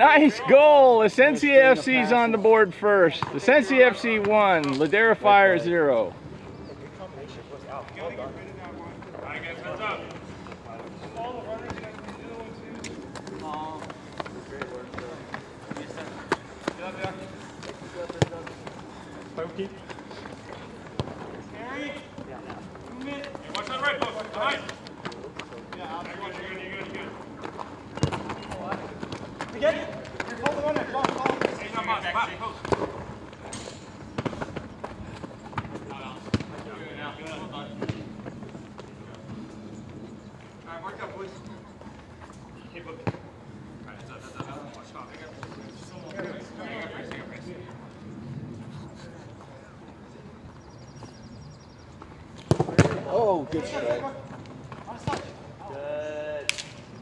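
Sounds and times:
players shouting: 0.0s - 6.2s.

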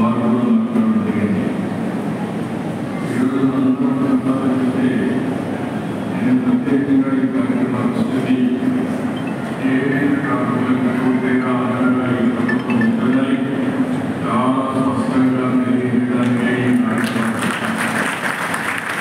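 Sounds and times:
man speaking over loudspeakers: 0.0s - 1.6s, 3.0s - 5.4s, 6.1s - 17.6s.

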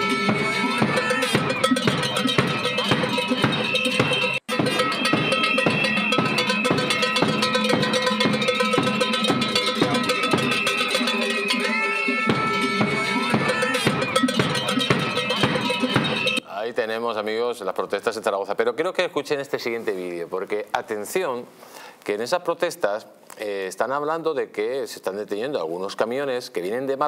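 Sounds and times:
cowbells clanging: 0.0s - 16.4s
percussion: 0.0s - 16.4s.

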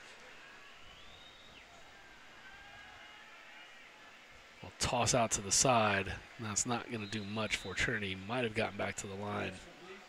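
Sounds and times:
distant shouts: 0.0s - 4.7s.

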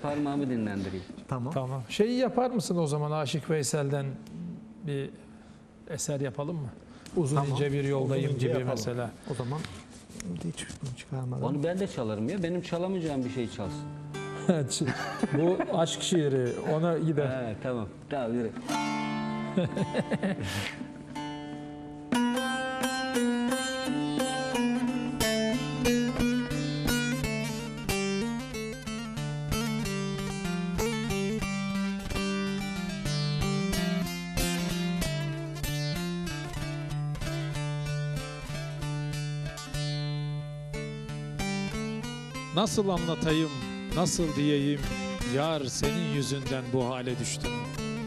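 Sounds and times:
plucked long-necked lute melody: 13.3s - 16.8s, 18.4s - 48.0s.

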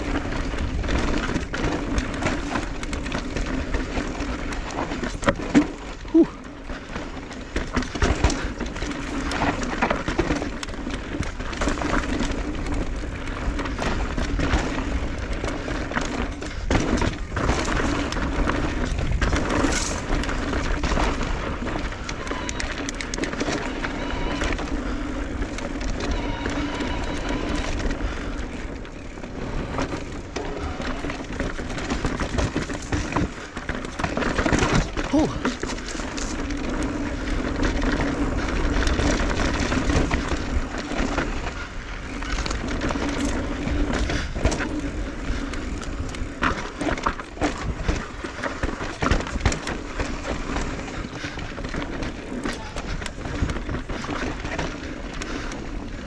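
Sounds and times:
bike rattling and knocking: 0.0s - 56.0s
tyres crunching over stones: 0.0s - 56.0s.

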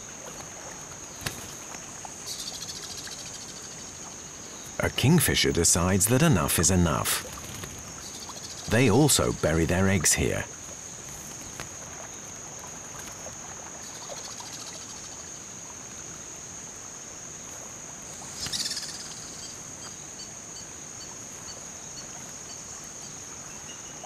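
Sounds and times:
insect chirring drone: 0.0s - 24.0s.

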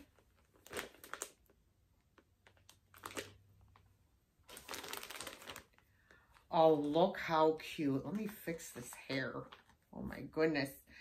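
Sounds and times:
stuffed toys rustling: 0.0s - 7.0s.

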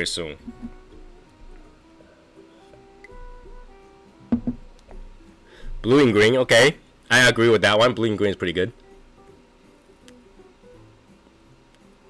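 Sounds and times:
plucked guitar music: 0.4s - 5.4s
sharp knock: 4.3s - 4.7s.

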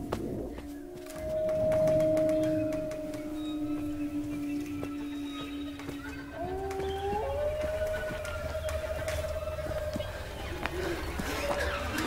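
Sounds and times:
eerie held tones: 0.6s - 12.0s.

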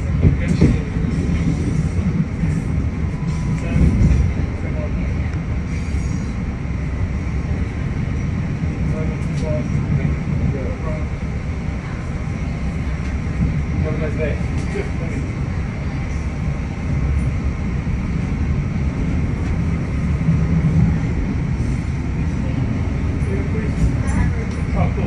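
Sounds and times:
train wheels rumbling on rails: 0.0s - 25.0s.

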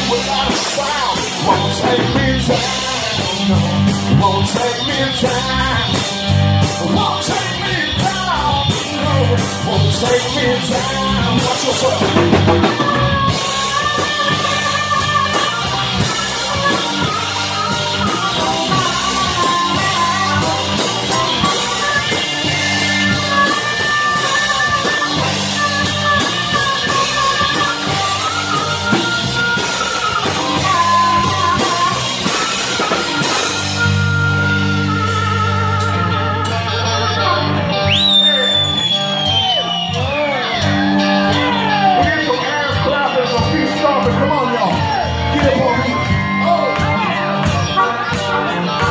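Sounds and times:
drums: 0.0s - 48.9s
electric bass: 0.0s - 48.9s
harmonica long notes: 0.0s - 48.9s.

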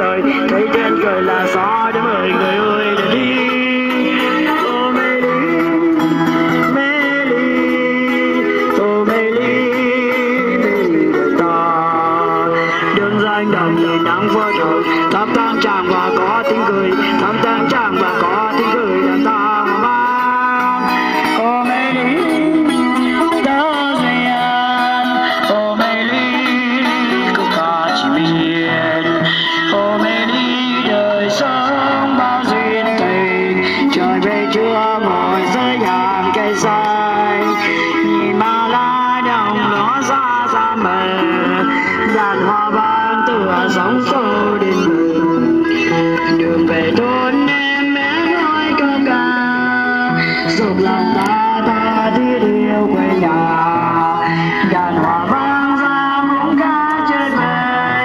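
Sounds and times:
amplified electric guitar: 0.0s - 58.0s
woman singing into a microphone: 0.0s - 58.0s.

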